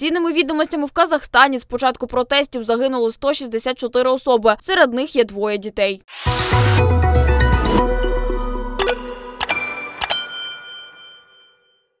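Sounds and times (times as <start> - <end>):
bright electronic chime: 6.1 - 11.9.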